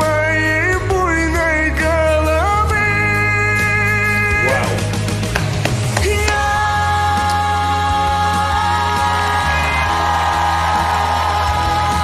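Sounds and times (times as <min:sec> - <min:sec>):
instrumental backing with bass: 0:00.0 - 0:12.0
woman singing: 0:06.0 - 0:09.0.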